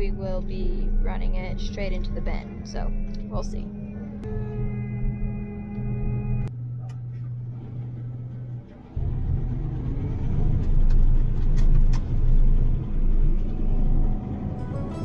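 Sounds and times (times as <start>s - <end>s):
music: 0.0s - 7.2s, 14.0s - 15.0s
combine harvester rumbling: 0.0s - 15.0s.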